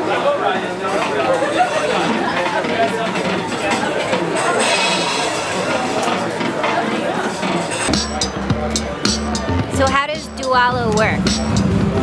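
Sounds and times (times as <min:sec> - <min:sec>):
crowd chatter: 0:00.0 - 0:12.0
faint music: 0:00.0 - 0:12.0
electronic music with sharp beats: 0:02.0 - 0:12.0.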